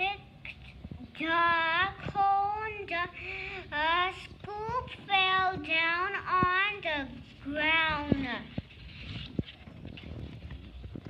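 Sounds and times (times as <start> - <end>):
child singing: 1.2 - 8.4.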